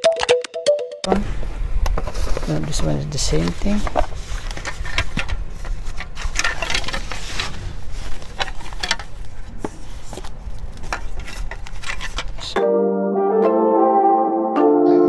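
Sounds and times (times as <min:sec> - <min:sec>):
low rumble: 0:01.1 - 0:04.5
foam wrap and plastic bag rustling: 0:02.0 - 0:12.6.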